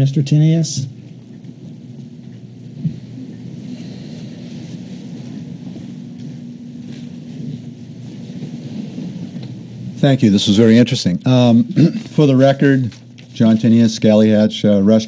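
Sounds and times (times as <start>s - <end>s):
low rumbling room noise: 0.0s - 15.0s.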